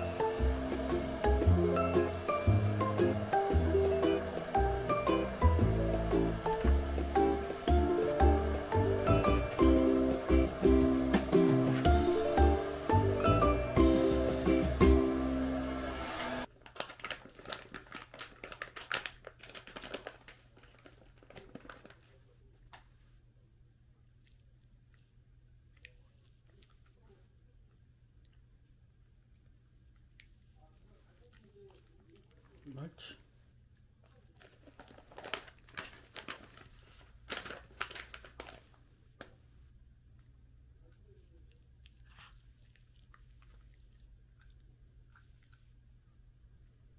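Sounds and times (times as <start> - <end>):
plucked-string music: 0.0 - 15.9
plastic pouch crinkling: 16.5 - 22.4, 34.2 - 39.3.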